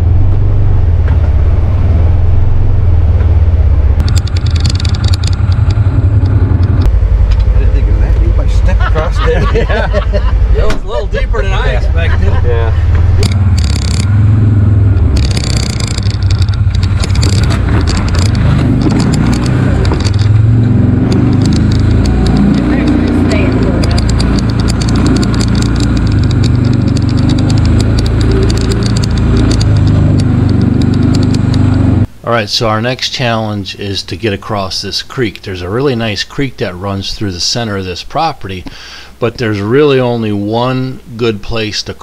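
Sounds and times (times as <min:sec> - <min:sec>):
utility vehicle engine running: 0:00.0 - 0:32.1
knocks and rattles: 0:04.0 - 0:07.5, 0:12.9 - 0:14.2, 0:14.9 - 0:31.8
man speaking: 0:07.5 - 0:12.8, 0:32.2 - 0:42.0.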